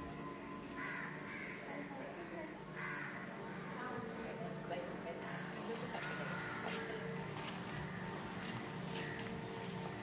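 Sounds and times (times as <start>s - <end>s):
crow cawing: 0.8s - 1.9s, 2.8s - 3.8s, 6.0s - 6.9s.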